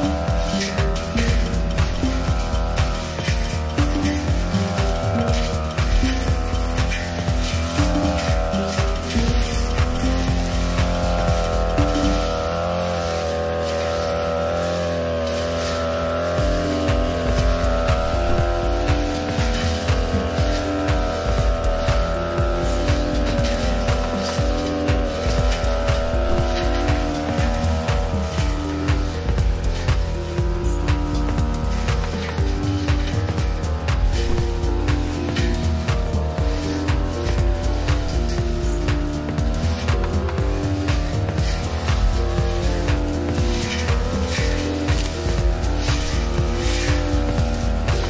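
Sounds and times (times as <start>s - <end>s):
background music with steady beat: 0.0s - 48.0s
brush cutter engine running: 0.0s - 48.0s.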